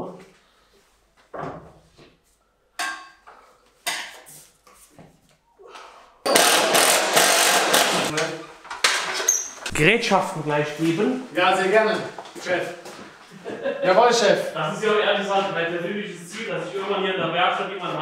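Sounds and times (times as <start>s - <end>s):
drill boring into ceiling: 6.2s - 8.2s.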